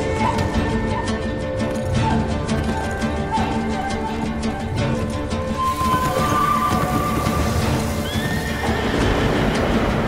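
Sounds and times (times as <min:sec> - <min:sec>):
hooves galloping on dirt: 0:00.0 - 0:10.0
horse whinnying: 0:05.6 - 0:09.6.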